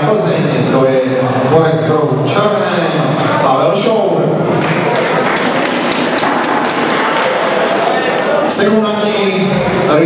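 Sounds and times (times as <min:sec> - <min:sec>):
crowd noise: 0:00.0 - 0:10.0
audience clapping: 0:04.5 - 0:08.6.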